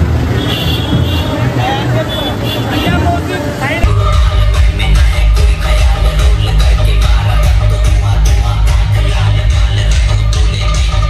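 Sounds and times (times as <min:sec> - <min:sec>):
crowd voices: 0:00.9 - 0:11.0
loud bass-heavy music: 0:02.7 - 0:11.0
music: 0:03.1 - 0:11.0
low rumble: 0:03.8 - 0:10.9.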